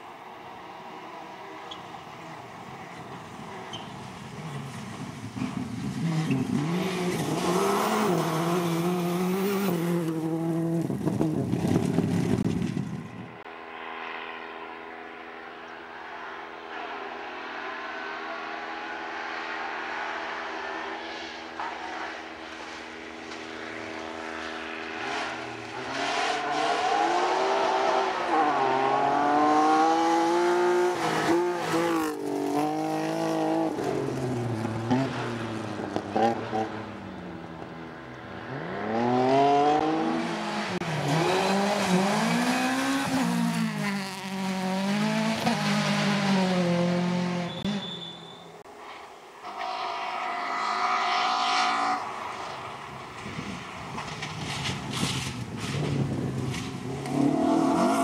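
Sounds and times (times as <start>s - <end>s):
rally car engines revving: 1.3s - 12.8s, 14.2s - 48.4s, 49.4s - 58.0s.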